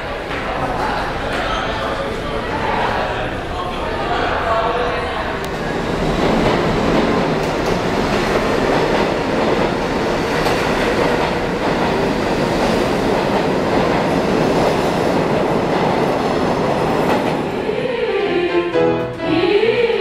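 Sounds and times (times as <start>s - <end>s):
subway train wheels on rails: 0.0s - 18.4s.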